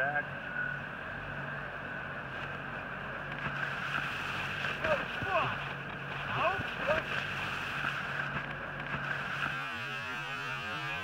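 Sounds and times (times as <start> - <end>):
rope tow mechanical hum: 0.0 - 11.0.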